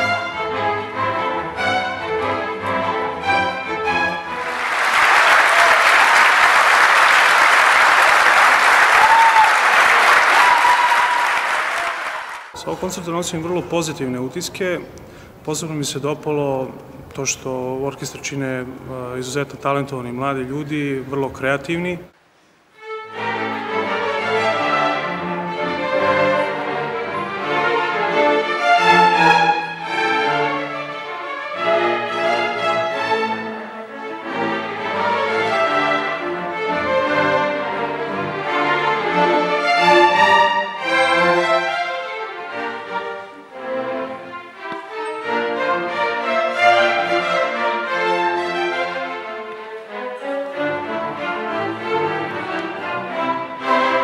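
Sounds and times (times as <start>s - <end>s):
string orchestra playing: 0.0s - 13.6s, 22.8s - 54.0s.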